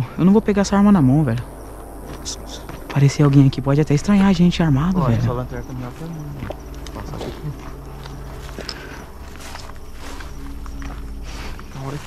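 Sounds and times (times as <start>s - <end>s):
steady low hum: 0.0s - 12.0s
footsteps crunching on dirt: 1.4s - 12.0s.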